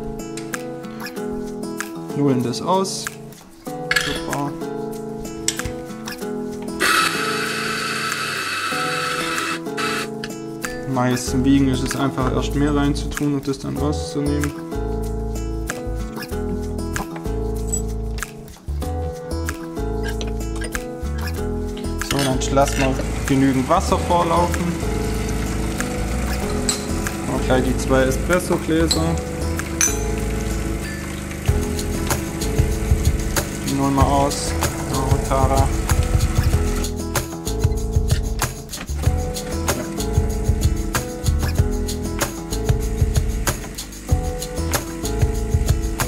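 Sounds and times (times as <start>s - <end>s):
background music: 0.0s - 46.0s
coffee grinder grinding: 6.8s - 10.1s
espresso machine flushing water: 6.8s - 10.1s, 22.8s - 36.8s
pump running: 6.8s - 10.1s, 22.6s - 36.9s, 39.4s - 41.4s, 42.2s - 46.0s.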